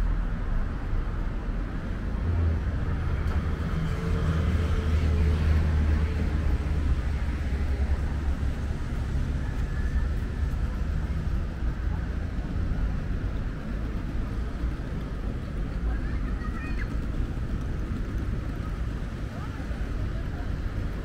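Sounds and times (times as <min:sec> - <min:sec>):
low rumble of road traffic: 0:00.0 - 0:21.0.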